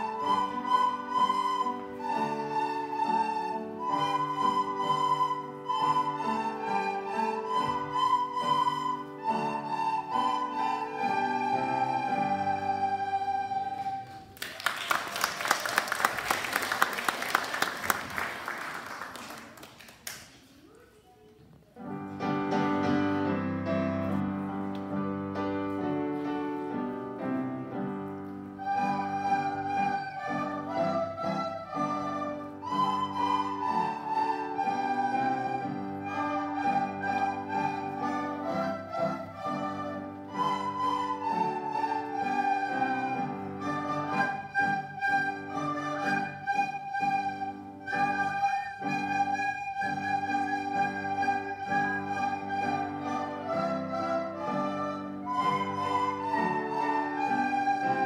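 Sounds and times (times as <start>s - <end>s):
children playing recorders: 0.0s - 15.6s, 27.9s - 58.0s.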